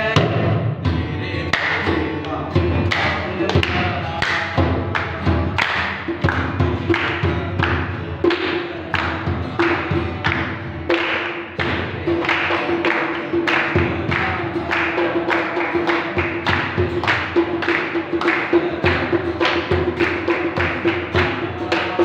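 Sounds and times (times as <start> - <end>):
acoustic guitar: 0.0 - 22.0
people clapping a steady beat: 0.0 - 22.0
people singing: 0.0 - 22.0.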